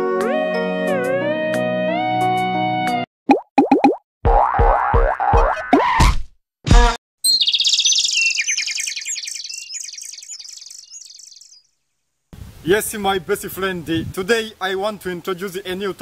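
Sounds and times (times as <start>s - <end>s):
thumping beats: 4.3s - 7.0s
high rapid chirping trill: 7.2s - 11.6s.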